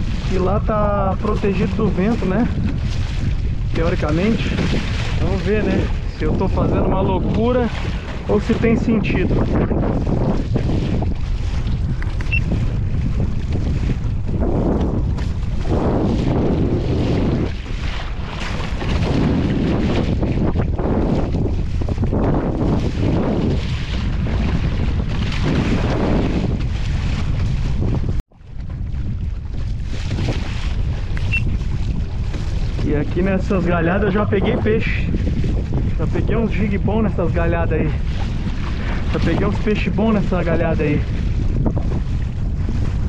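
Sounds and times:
water sloshing against hull: 0:00.0 - 0:43.0
wind buffeting microphone: 0:00.0 - 0:43.0.

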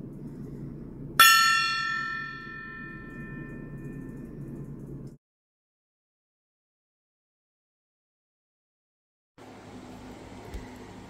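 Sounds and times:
steady low hum: 0:00.0 - 0:05.2
brass gong ringing: 0:01.2 - 0:03.9.

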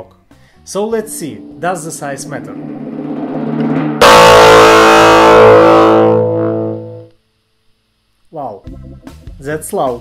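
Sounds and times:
electric guitar chord ringing: 0:00.8 - 0:07.1.

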